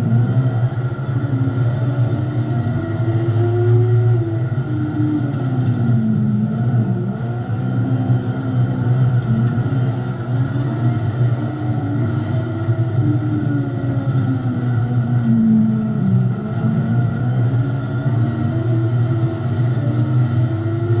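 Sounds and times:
race car engine running hard: 0:00.0 - 0:21.0.

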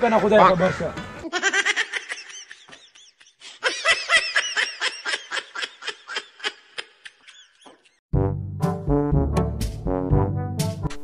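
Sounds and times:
high-pitched laughter: 0:01.2 - 0:08.0.

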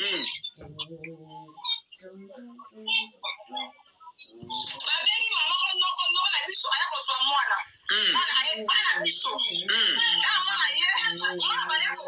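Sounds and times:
person talking quickly: 0:07.9 - 0:10.3.

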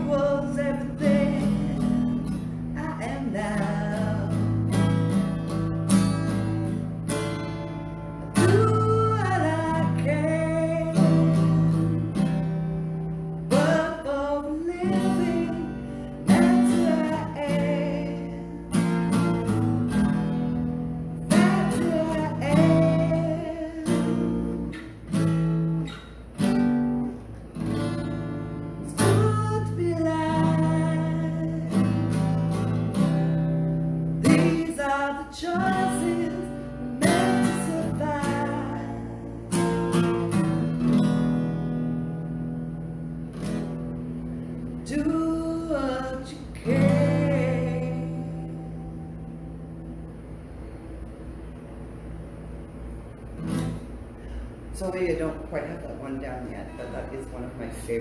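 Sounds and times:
woman singing: 0:00.0 - 0:04.6, 0:08.4 - 0:11.6, 0:13.5 - 0:18.7, 0:21.2 - 0:24.7, 0:28.9 - 0:32.3, 0:34.2 - 0:39.5, 0:44.8 - 0:49.0
strummed acoustic guitar: 0:00.0 - 0:58.0.

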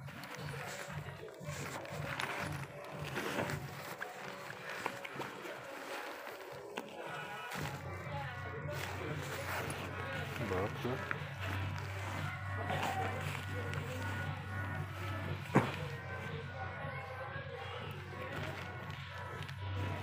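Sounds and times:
background music: 0:00.0 - 0:20.0
indistinct voices: 0:00.0 - 0:20.0.

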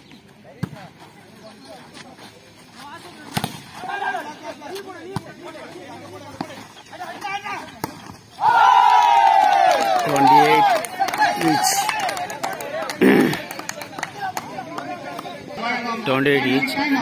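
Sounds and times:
people shouting and yelling: 0:03.2 - 0:17.0.

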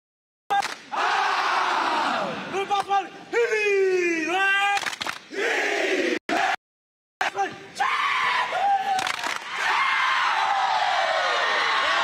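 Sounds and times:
roar of cheering voices: 0:00.9 - 0:02.4, 0:07.9 - 0:12.0
long drawn-out yell: 0:07.8 - 0:12.0.

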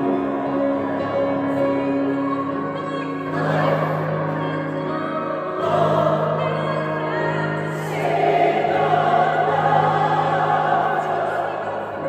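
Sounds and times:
choir singing sustained notes: 0:00.0 - 0:12.0.

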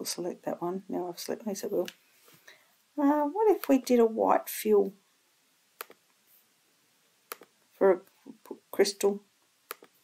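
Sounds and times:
computer mouse click: 0:05.8 - 0:06.0, 0:09.7 - 0:10.0.

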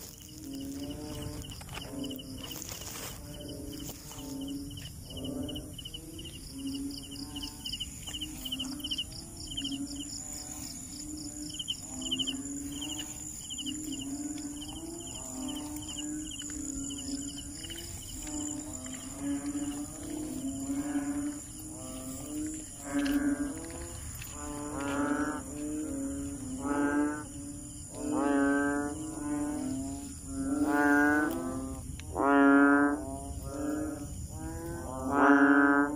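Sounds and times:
frogs croaking in chorus: 0:00.0 - 0:35.9
high insect chirps: 0:00.0 - 0:35.9
high-pitched insect hum: 0:00.0 - 0:35.9.

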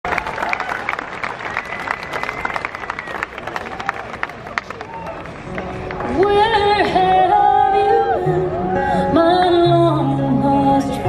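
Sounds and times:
audience applauding: 0:00.0 - 0:06.4.

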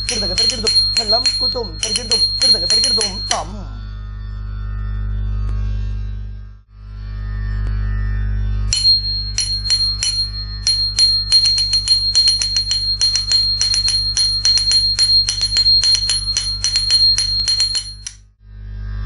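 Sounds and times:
small hand cymbals struck: 0:00.0 - 0:03.5, 0:08.8 - 0:18.2.

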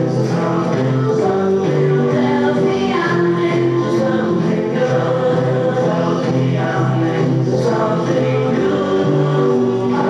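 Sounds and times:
choir singing long notes: 0:00.0 - 0:10.0.

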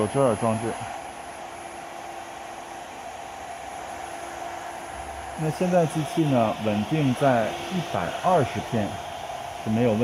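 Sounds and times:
workshop hum and hiss: 0:00.0 - 0:10.0.

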